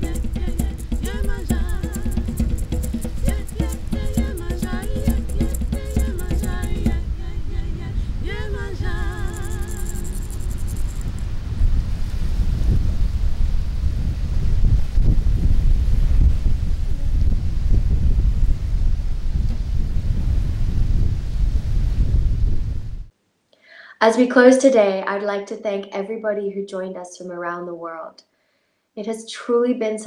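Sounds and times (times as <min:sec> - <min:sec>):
shaken rattle: 0:00.0 - 0:07.2, 0:08.3 - 0:11.3
woman singing held note: 0:00.0 - 0:10.2
wind buffeting microphone: 0:00.0 - 0:23.1.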